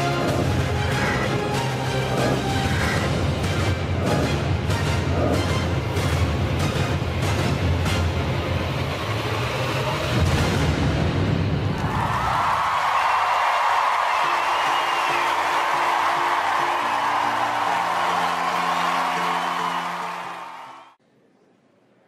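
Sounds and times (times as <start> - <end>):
audience cheering and applauding: 11.7 - 21.0.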